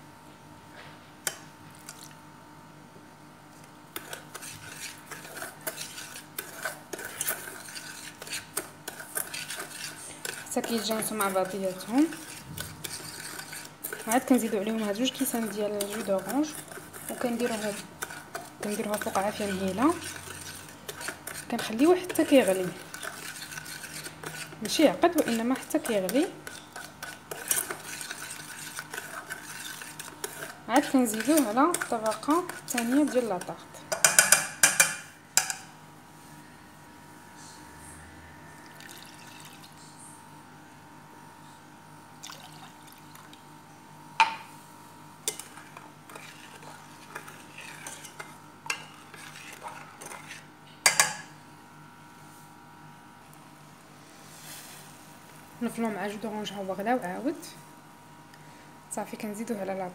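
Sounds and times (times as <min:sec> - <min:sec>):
metal spoon scraping a pot: 0:04.0 - 0:35.7, 0:45.2 - 0:51.3
spoon clinking against pot: 0:50.8 - 0:51.3.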